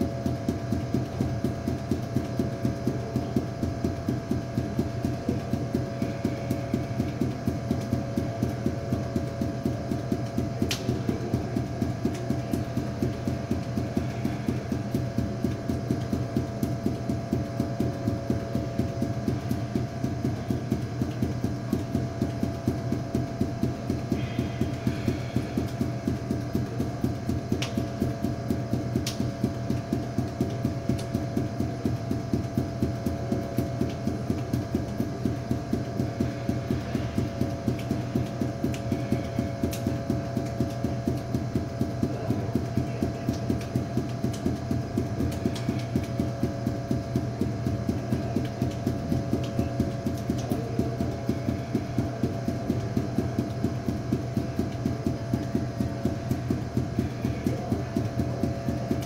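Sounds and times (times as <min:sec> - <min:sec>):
steady hum: 0:00.0 - 0:59.0.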